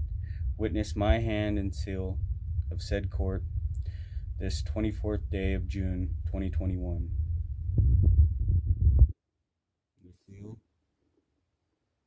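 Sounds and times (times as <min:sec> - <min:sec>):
phone microphone handling noise: 0:07.7 - 0:09.2.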